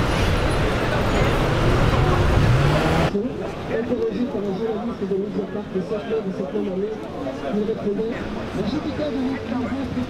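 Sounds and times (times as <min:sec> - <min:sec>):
vehicle engine accelerating: 0:00.0 - 0:03.1
city road traffic: 0:00.0 - 0:10.0.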